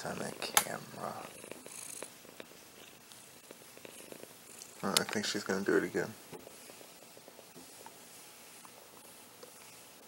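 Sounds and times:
cat purring: 0.0s - 10.0s.

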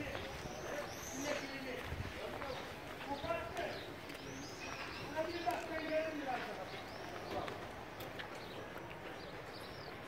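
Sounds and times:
people talking: 0.0s - 7.7s
footsteps on cobblestones: 0.0s - 10.0s
bird chirps: 0.1s - 1.8s, 2.5s - 7.6s, 8.3s - 10.0s.

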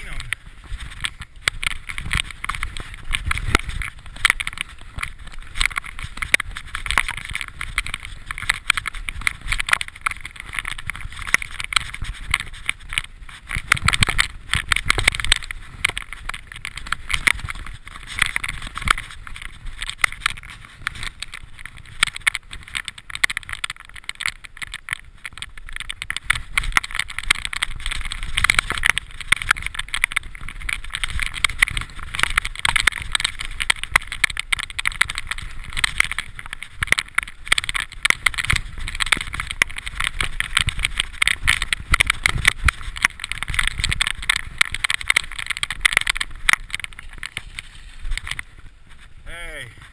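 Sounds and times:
bike rattling over bumps: 0.0s - 49.9s
tyre noise on dirt and leaves: 0.0s - 49.9s.

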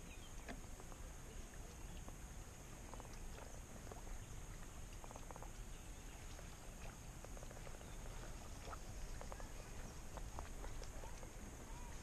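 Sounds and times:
small animal clicking calls: 2.8s - 12.0s.

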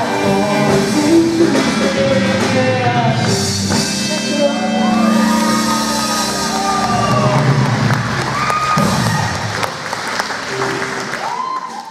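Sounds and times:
live band final notes: 0.0s - 11.6s
audience applauding and cheering: 4.6s - 11.9s.

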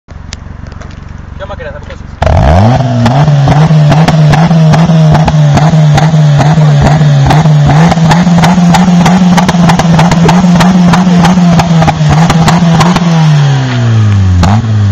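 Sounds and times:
car exhaust at raised revs: 2.0s - 14.9s.

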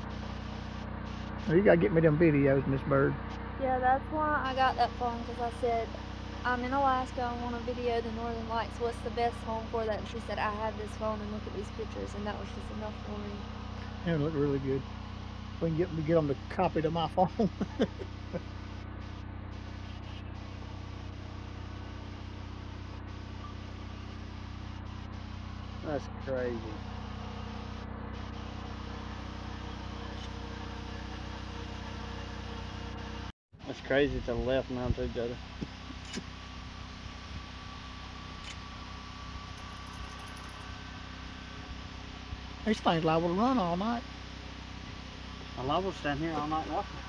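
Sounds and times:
car engine idling: 0.0s - 33.3s, 38.4s - 47.0s
machine humming with whine: 0.0s - 47.0s.

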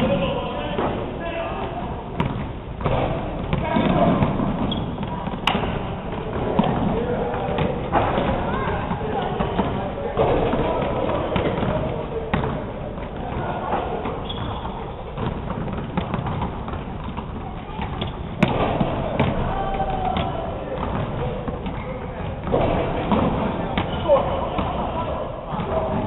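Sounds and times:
basketballs bouncing on hardwood: 1.6s - 26.0s.

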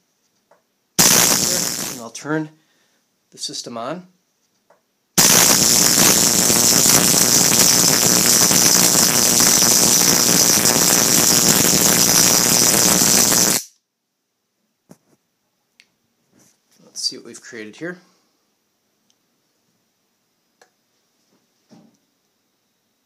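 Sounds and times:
electric arc crackling: 1.0s - 2.2s, 5.2s - 13.8s.

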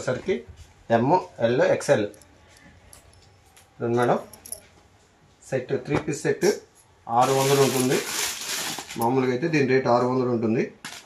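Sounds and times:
cotton garments rustling: 7.2s - 9.2s.

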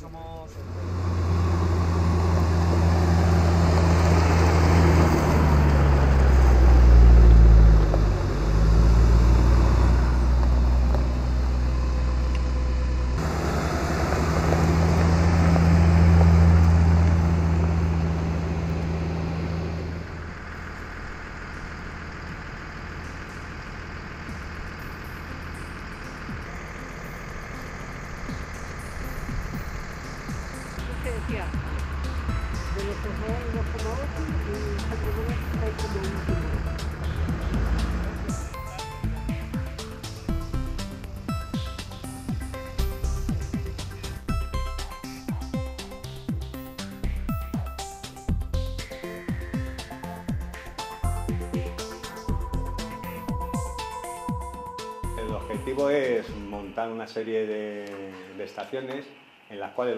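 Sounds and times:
diesel engines of vehicles passing: 0.0s - 59.9s.

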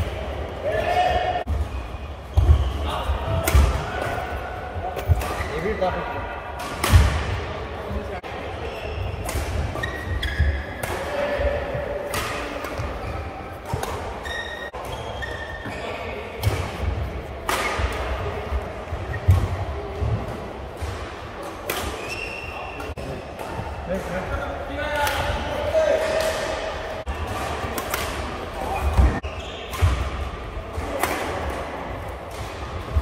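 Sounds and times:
shoes squeaking on court: 8.6s - 10.8s, 12.8s - 16.2s
badminton racket hitting shuttlecock: 27.3s - 29.1s.

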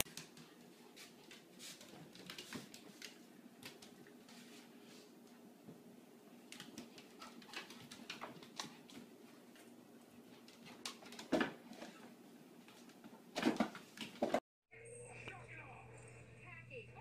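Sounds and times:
animals scratching and tapping on floor: 0.0s - 5.4s, 6.4s - 14.4s.

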